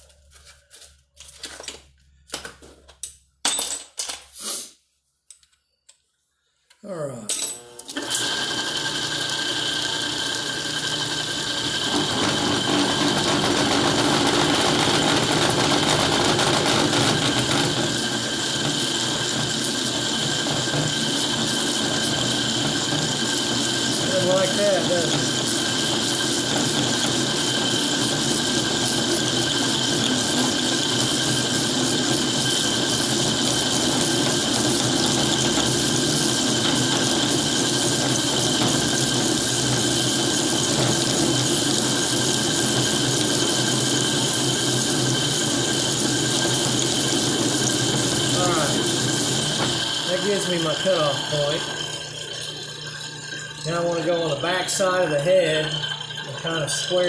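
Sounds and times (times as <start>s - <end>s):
metal lathe motor whine: 7.6s - 57.0s.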